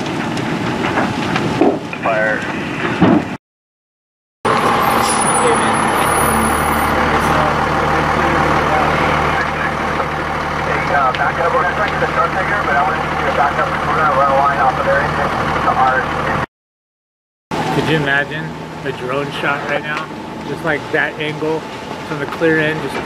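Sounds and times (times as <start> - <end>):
fire engine running: 0.0 - 3.2, 4.4 - 16.5, 17.5 - 23.0
indistinct voices talking: 4.5 - 16.5, 17.6 - 23.0.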